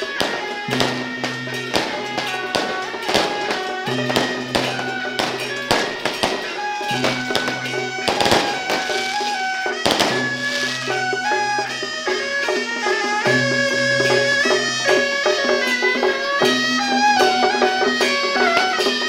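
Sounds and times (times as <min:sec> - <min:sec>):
drum and cymbal strikes: 0:00.0 - 0:19.0
reedy wind melody: 0:00.0 - 0:19.0.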